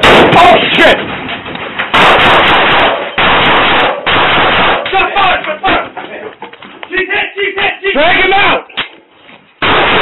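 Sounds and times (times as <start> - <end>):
loud gunshots indoors: 0.0 - 0.6, 1.9 - 5.0, 9.6 - 10.0.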